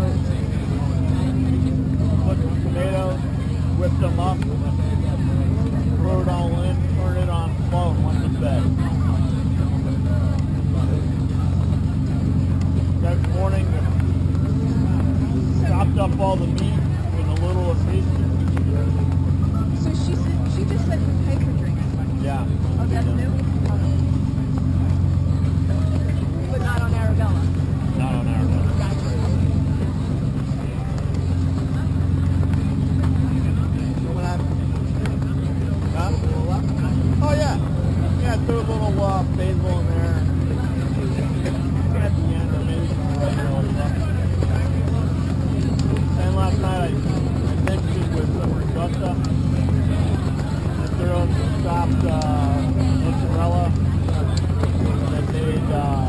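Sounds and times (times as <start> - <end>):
distant conversation: 0.0 - 56.0
low machine hum: 0.0 - 56.0.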